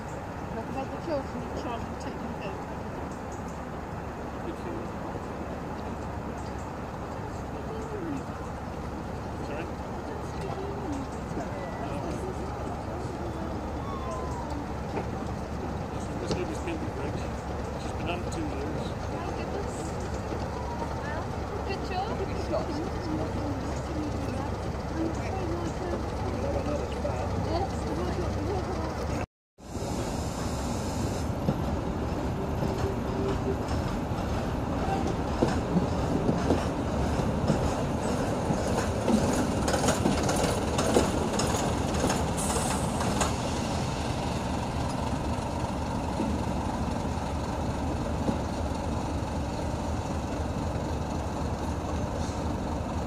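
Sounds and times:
diesel train engines: 0.0 - 53.0
train wheels clicking over rail joints: 5.1 - 29.2, 29.9 - 53.0.

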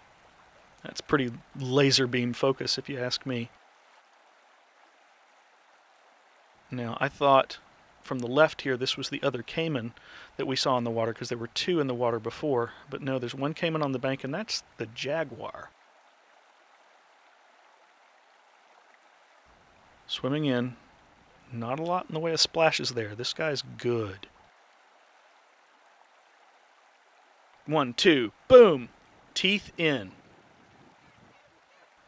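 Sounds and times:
faint hiss of river water: 0.0 - 32.0.

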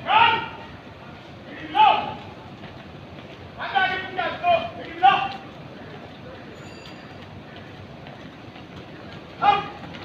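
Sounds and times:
shoes marching on concrete: 0.0 - 10.0.

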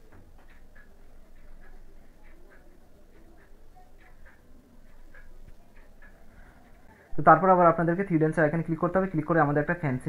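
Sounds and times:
faint ticking: 0.0 - 10.0
low background noise: 0.0 - 10.0.

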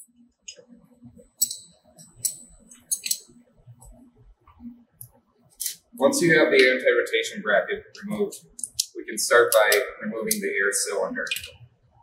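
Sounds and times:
ratchet wrench clicking: 1.4 - 3.2
steel parts clinking: 1.4 - 3.3, 5.6 - 5.8.

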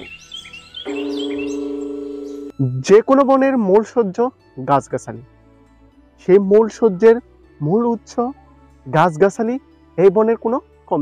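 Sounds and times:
short high bird chirps: 0.0 - 2.5
held bell-like note: 0.8 - 2.5.

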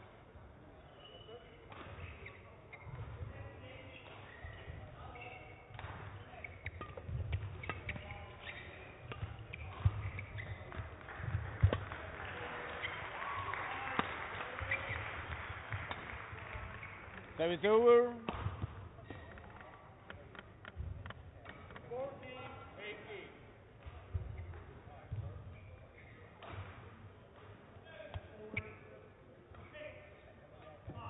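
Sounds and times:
shoe squeaks on court floor: 0.8 - 11.0, 12.7 - 13.1, 14.4 - 17.5, 18.3 - 22.6, 23.8 - 26.8, 28.2 - 31.0
racket striking shuttlecock: 5.7 - 11.9, 18.2 - 20.8.

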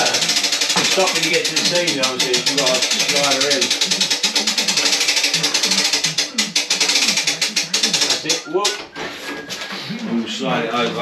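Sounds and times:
winch ratcheting clicks: 0.0 - 8.5.

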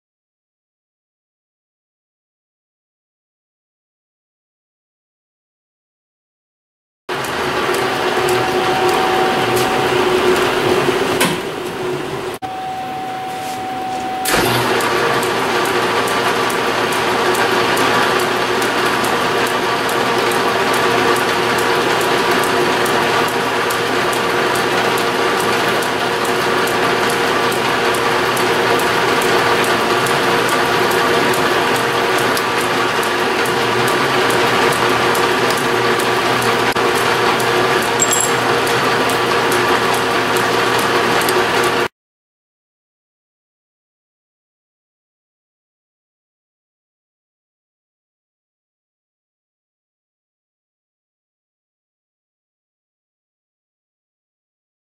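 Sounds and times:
metal lathe running: 7.1 - 12.4, 14.2 - 41.8
gear drive whine and clatter: 7.1 - 41.9
drill bit boring through steel: 7.2 - 10.6.

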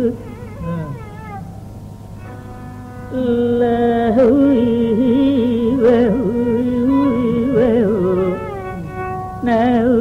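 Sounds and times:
constant low hum: 0.0 - 10.0.

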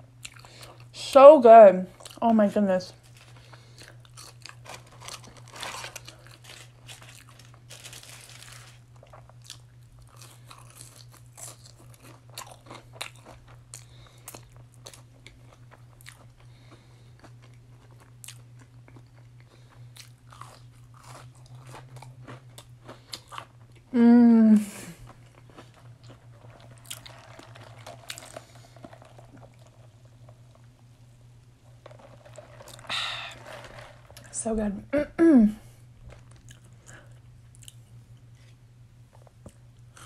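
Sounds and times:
person chewing crunchy fries: 0.0 - 0.9, 1.9 - 2.2, 2.9 - 24.0, 24.7 - 34.3, 36.0 - 40.0.

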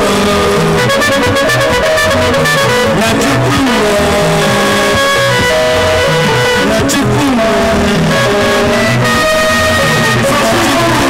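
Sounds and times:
band music with electric guitars: 0.0 - 11.0.

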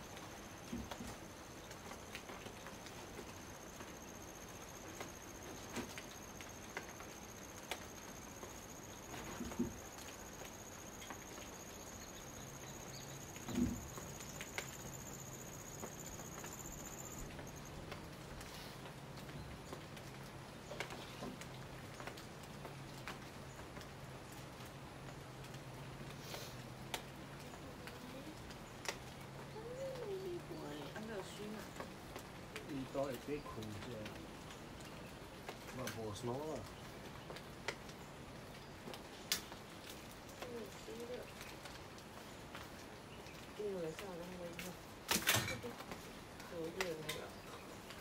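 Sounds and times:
light rain on foliage: 0.0 - 48.0.

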